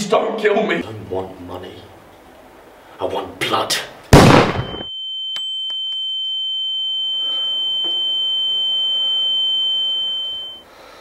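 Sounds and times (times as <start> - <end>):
high-pitched ringing tone: 4.6 - 10.7.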